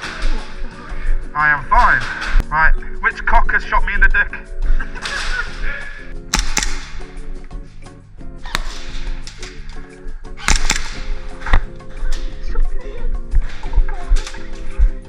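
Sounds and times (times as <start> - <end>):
background music with low chords: 0.0 - 15.0
airsoft gun shots: 6.3 - 7.3, 8.4 - 9.8, 10.4 - 11.7.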